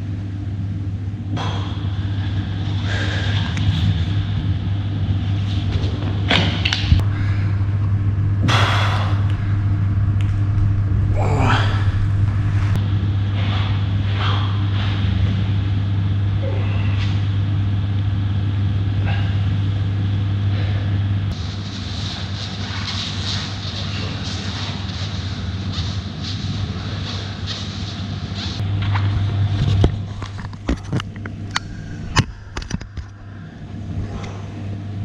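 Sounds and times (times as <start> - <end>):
low mechanical hum: 0.0 - 35.0.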